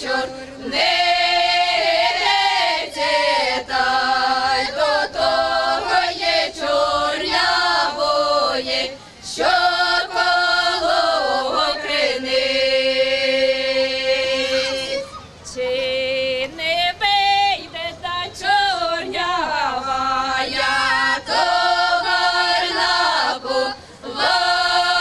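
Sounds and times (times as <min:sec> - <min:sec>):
women singing unaccompanied: 0:00.0 - 0:25.0.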